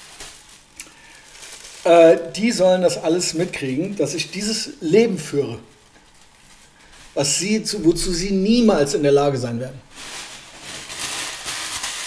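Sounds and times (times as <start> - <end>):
packaging rustling and crinkling: 0.0 - 12.0.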